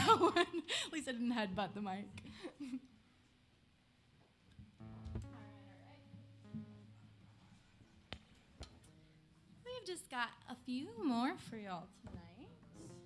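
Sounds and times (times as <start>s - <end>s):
amplified guitar notes: 4.8s - 9.5s.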